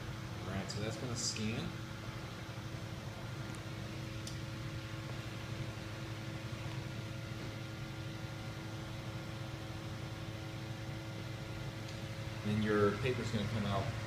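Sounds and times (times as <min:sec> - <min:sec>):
document feeder motor hum: 0:00.0 - 0:14.0.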